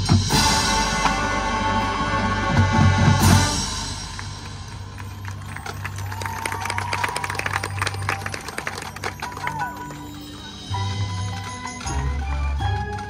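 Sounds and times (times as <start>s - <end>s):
marching band held low notes: 0.0s - 13.0s.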